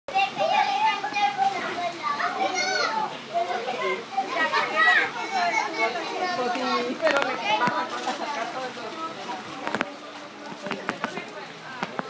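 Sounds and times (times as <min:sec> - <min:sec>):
children shouting and chattering: 0:00.1 - 0:12.0.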